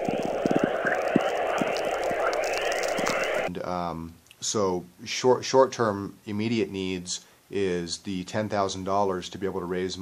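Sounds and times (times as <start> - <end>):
radio static crackling hiss: 0.0 - 3.6.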